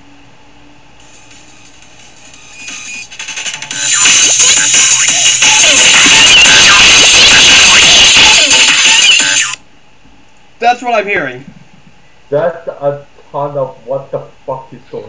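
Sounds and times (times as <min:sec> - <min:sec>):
loud music: 0:01.0 - 0:09.6
sound effects: 0:01.1 - 0:09.6.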